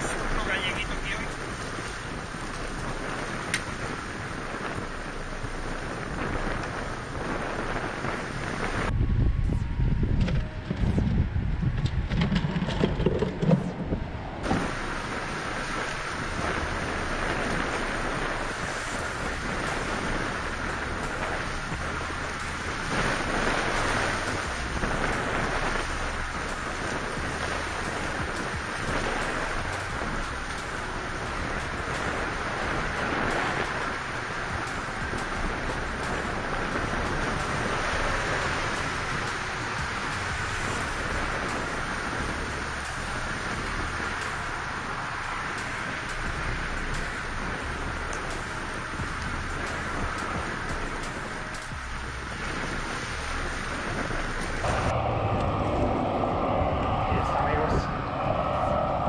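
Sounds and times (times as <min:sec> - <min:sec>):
low rumbling buffeting: 0:00.0 - 0:59.0
wind on microphone: 0:00.0 - 0:59.0.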